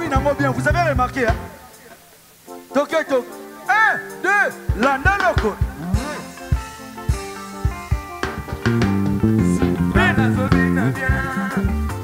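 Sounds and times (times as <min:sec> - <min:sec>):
keyboard: 0:00.0 - 0:12.0
drum hits: 0:04.7 - 0:11.3
bass line: 0:04.8 - 0:12.0.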